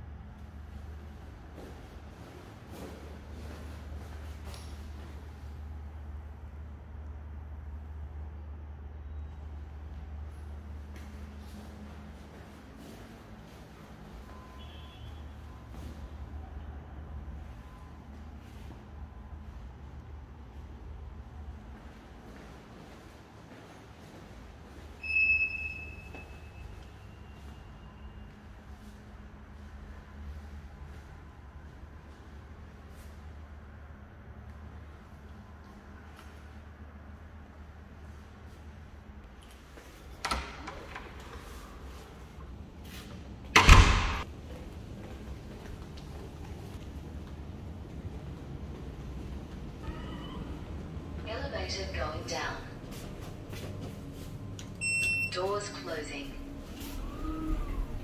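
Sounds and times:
lift button beep: 0:25.0 - 0:26.8, 0:54.8 - 0:55.9
low steady lift hum: 0:44.2 - 0:58.0.

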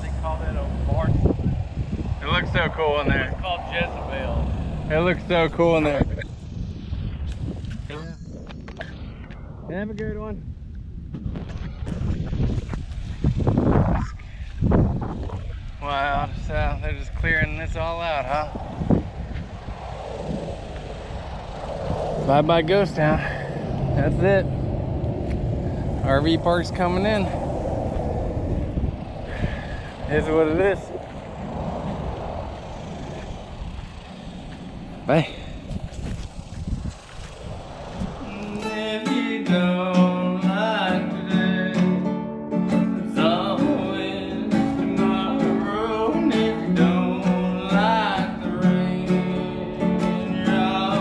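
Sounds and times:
loud wind rushes: 0:00.0 - 0:41.3
rumbling wind on microphone: 0:00.0 - 0:51.0
microphone handling noise: 0:18.2 - 0:32.0, 0:35.4 - 0:39.0.

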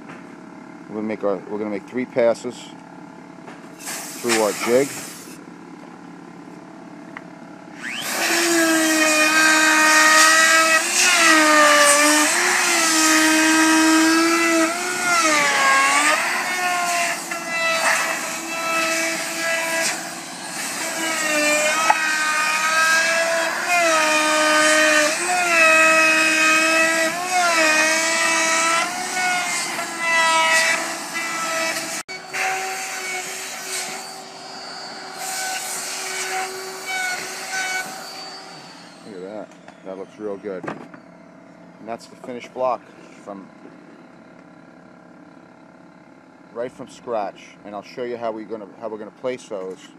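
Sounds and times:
router cutting wood: 0:07.8 - 0:40.0.

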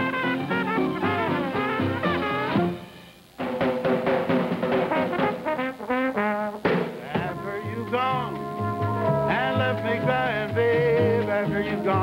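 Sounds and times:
jazz band playing: 0:00.0 - 0:12.0
drum hit: 0:03.4 - 0:05.7, 0:06.6 - 0:07.4.

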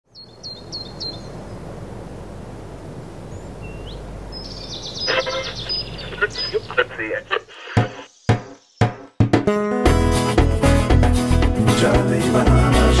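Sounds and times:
bird chirping: 0:00.1 - 0:01.7, 0:03.2 - 0:09.2
low outdoor background noise: 0:00.1 - 0:08.8
radio tuning busy sound: 0:05.0 - 0:08.2.

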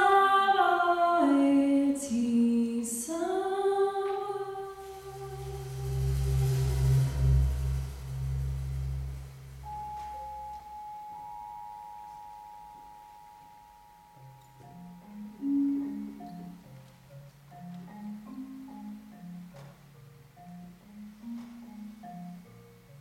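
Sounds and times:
marimba playing: 0:04.4 - 0:23.0
deep low sustained tone: 0:04.6 - 0:10.8
long high ringing note: 0:04.8 - 0:14.4.

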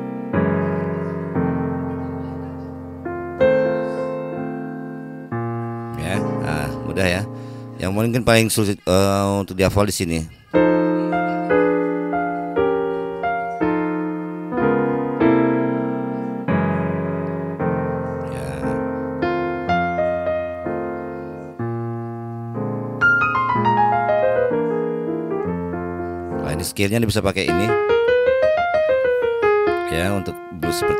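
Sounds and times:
piano playing blues: 0:00.0 - 0:08.4, 0:10.5 - 0:30.9.

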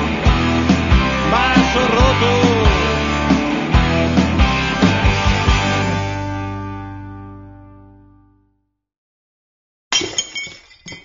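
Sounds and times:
drinking glass smashing: 0:09.9 - 0:11.0
falling glass shards clinking: 0:09.9 - 0:11.0.

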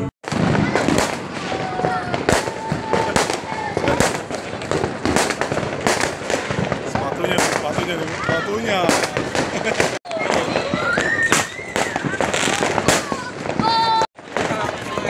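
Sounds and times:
people talking: 0:00.0 - 0:04.8, 0:06.8 - 0:15.0
fireworks and firecrackers banging: 0:00.0 - 0:15.0.

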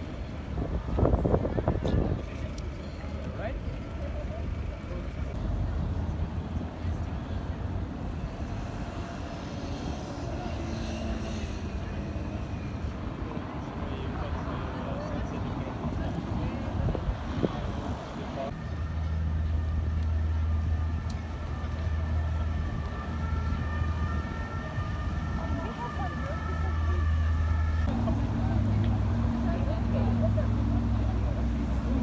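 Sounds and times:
people's voices: 0:00.0 - 0:32.0
steady engine hum: 0:00.0 - 0:32.0.

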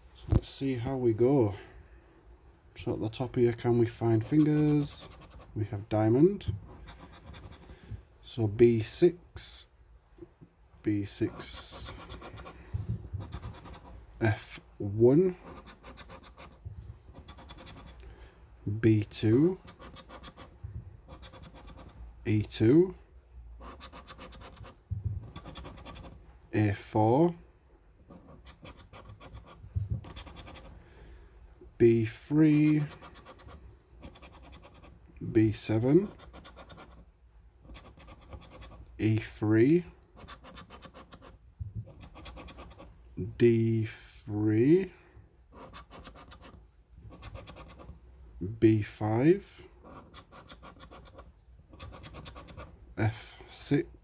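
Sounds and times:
coin scratching scratch card: 0:04.1 - 0:05.5, 0:06.8 - 0:07.7, 0:11.3 - 0:12.6, 0:13.2 - 0:14.0, 0:15.4 - 0:18.0, 0:19.6 - 0:22.0, 0:23.6 - 0:26.2, 0:28.1 - 0:30.8, 0:32.6 - 0:35.0, 0:36.0 - 0:37.0, 0:37.6 - 0:38.8, 0:40.2 - 0:42.9, 0:45.5 - 0:48.0, 0:49.8 - 0:52.7.

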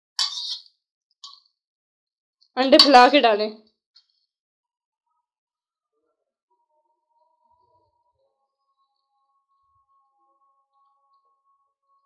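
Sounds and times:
spoon scraping a bowl: 0:00.2 - 0:01.4.

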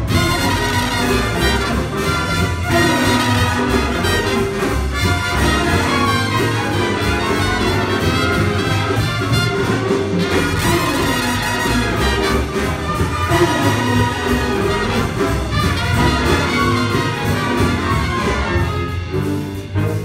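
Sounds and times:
saxophones: 0:00.0 - 0:20.0
trombones: 0:00.0 - 0:20.0
trumpets: 0:00.0 - 0:20.0.

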